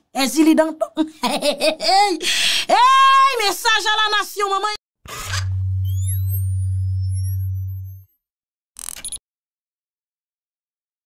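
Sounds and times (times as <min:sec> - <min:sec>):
deep synthetic hum: 0:05.4 - 0:08.0.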